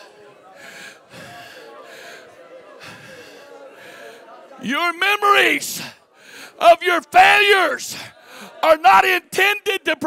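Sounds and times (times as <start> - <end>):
faint background voices: 0.0 - 4.8
man breathing heavily into microphone: 0.5 - 4.3.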